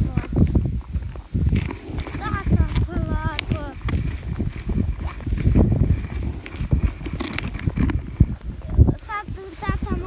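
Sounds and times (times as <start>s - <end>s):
footsteps crunching through snow: 0.0s - 10.0s
sled scraping over snow: 0.0s - 10.0s.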